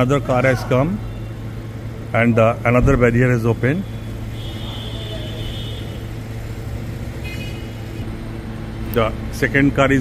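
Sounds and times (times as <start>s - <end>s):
machinery hum: 0.0s - 10.0s.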